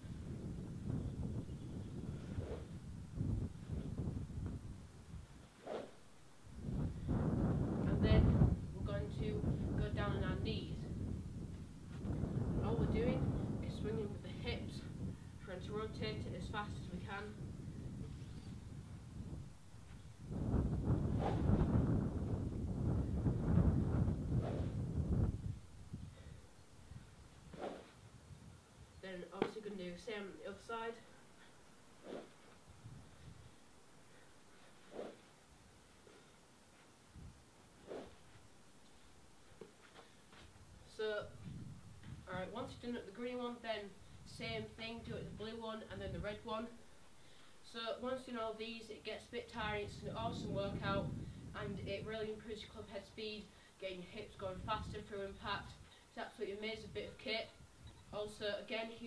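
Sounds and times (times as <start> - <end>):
wind rumbling on microphone: 0.0 - 31.1, 32.0 - 33.6, 37.1 - 38.4, 40.4 - 46.8, 49.5 - 53.0, 54.1 - 55.9
stick swishing through air: 2.0 - 4.1, 5.5 - 6.1, 19.9 - 22.1, 24.2 - 25.0, 27.4 - 28.0, 32.0 - 32.6, 34.7 - 35.4, 37.8 - 38.4.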